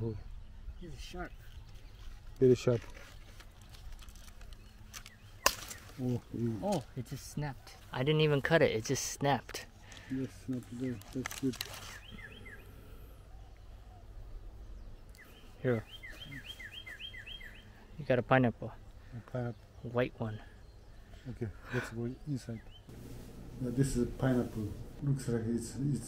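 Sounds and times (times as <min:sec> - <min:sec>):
pineapple stalk snapping: 0:02.8 - 0:06.9, 0:10.9 - 0:12.2
bird calling two-part notes: 0:11.7 - 0:14.2, 0:15.1 - 0:17.9.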